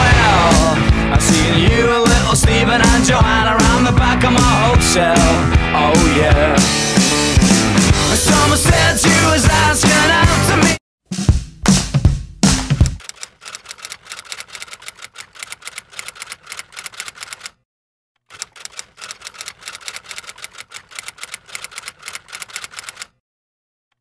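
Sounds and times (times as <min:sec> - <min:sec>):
loud rock music: 0:00.0 - 0:13.0
typewriter keystroke clicks: 0:12.8 - 0:17.6, 0:18.3 - 0:23.2.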